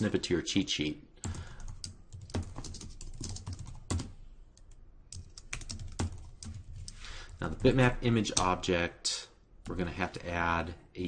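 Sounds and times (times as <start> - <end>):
computer keyboard typing: 1.2 - 8.5.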